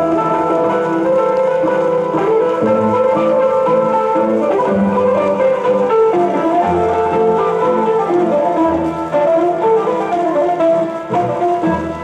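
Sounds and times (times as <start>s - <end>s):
plucked string melody: 0.0s - 12.0s.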